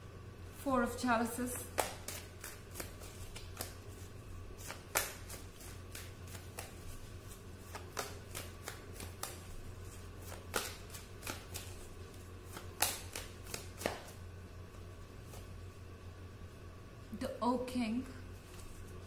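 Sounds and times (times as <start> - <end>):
cards being shuffled: 1.6 - 14.2, 15.2 - 15.6, 18.4 - 19.0.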